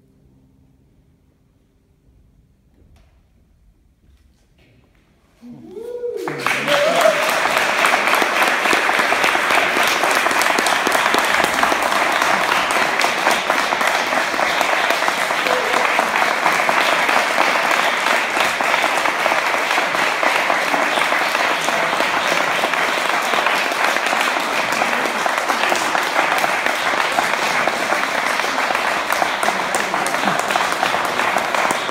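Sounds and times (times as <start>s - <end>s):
audience applauding: 5.7s - 31.9s.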